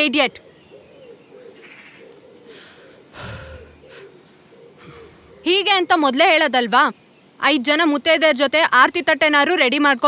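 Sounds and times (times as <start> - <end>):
person sighing: 2.5 - 4.1, 4.8 - 5.3.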